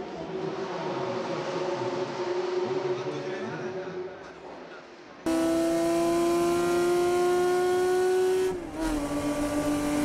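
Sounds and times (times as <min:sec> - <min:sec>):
race car engine drone: 0:00.0 - 0:04.6, 0:05.3 - 0:10.0.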